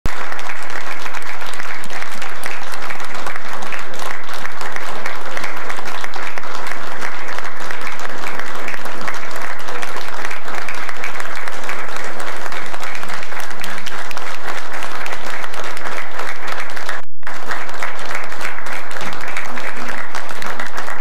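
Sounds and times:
roomful of people applauding: 0:00.0 - 0:21.0.

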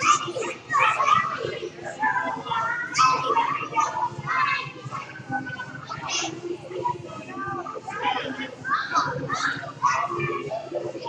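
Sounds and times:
young children talking and calling out: 0:00.0 - 0:11.0.

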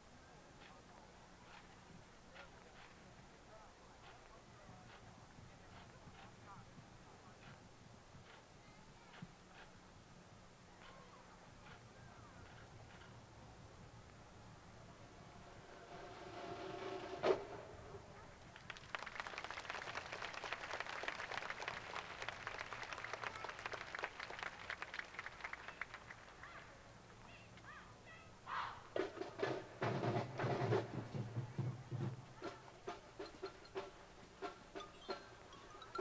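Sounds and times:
crowd applause: 0:18.1 - 0:26.8
marching drum beat: 0:29.0 - 0:35.4.

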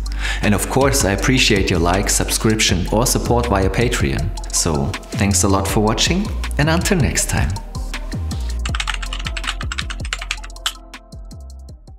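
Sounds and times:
electronic music with deep bass: 0:00.0 - 0:11.9.

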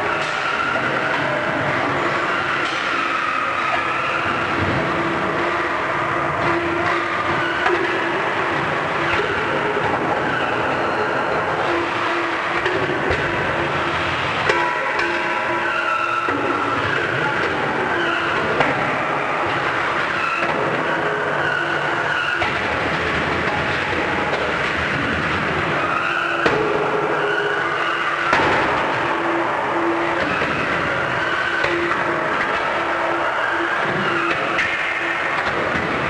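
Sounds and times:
dense noisy background: 0:00.0 - 0:36.0.

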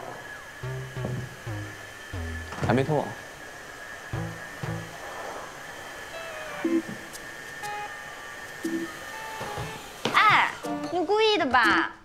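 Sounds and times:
floor cleaner whining: 0:00.0 - 0:11.7
soft background music: 0:06.1 - 0:12.0.

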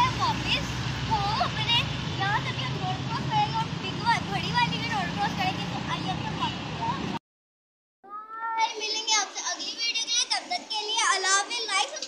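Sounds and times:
boy talking: 0:00.0 - 0:07.2, 0:08.1 - 0:12.0.

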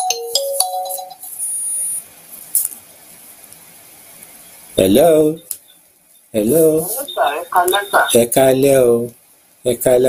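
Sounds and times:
phone ringtone melody: 0:00.0 - 0:01.5.

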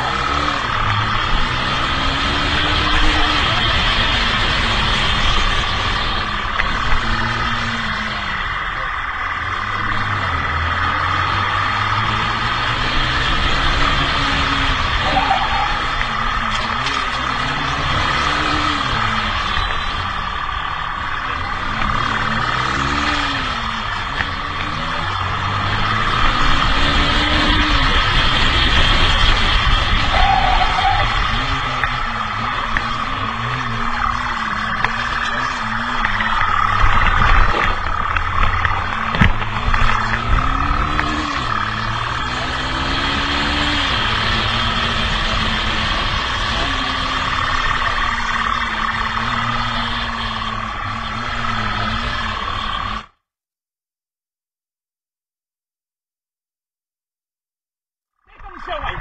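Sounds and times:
motorcycle engine revving: 0:00.0 - 0:53.2
road noise: 0:00.0 - 0:53.2, 0:58.3 - 0:59.0.

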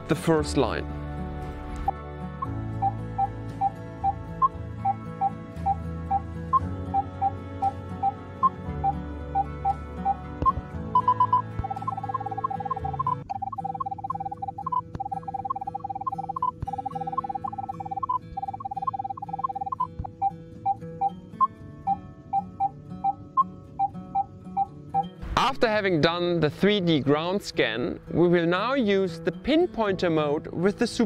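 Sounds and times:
background music with held chords: 0:00.0 - 0:31.0
metal detector beeps: 0:02.8 - 0:25.1.

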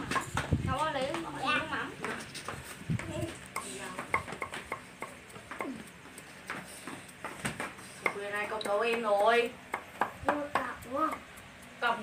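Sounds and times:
cleaver knocking on cutting board: 0:03.6 - 0:05.7, 0:07.2 - 0:11.3.

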